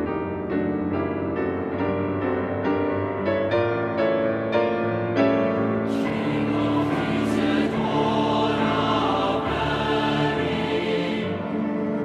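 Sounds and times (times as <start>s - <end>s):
choir singing a hymn: 5.8s - 12.0s.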